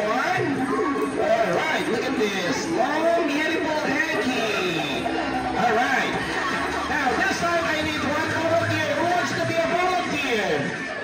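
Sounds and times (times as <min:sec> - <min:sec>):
crowd chattering: 0:00.0 - 0:11.0.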